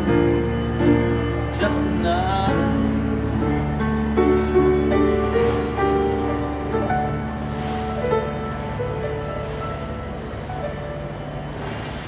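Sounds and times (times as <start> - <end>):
busy station hall background noise: 0.0 - 12.0
grand piano notes: 0.0 - 12.0.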